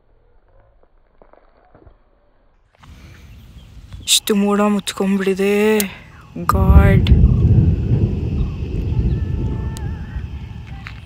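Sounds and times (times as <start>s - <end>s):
thunder rumble: 6.4s - 11.0s.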